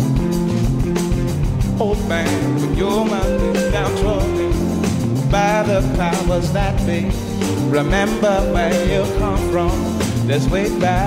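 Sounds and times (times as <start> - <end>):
live rock band playing: 0.0 - 11.0
person singing long notes: 1.8 - 11.0.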